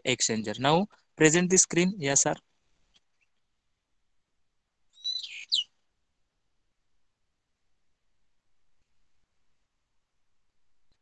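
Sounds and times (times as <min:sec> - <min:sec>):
bird chirp: 0:00.2 - 0:03.8, 0:04.9 - 0:05.8.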